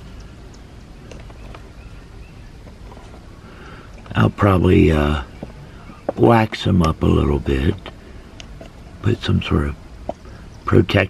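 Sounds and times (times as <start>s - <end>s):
faint soft clicks: 0.0s - 1.7s.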